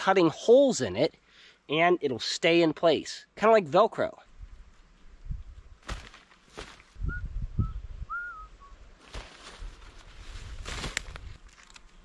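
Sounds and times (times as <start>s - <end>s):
footsteps on forest floor: 5.8s - 7.0s, 9.0s - 11.8s
short high whistled notes: 7.0s - 8.8s.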